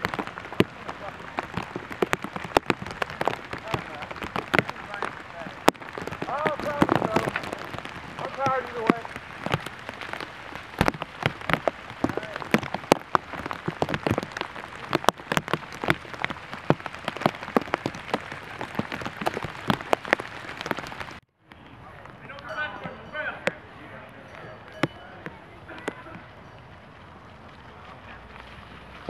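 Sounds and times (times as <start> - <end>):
rain ticking on surface: 0.0 - 29.0
soft rain wash: 0.0 - 29.0.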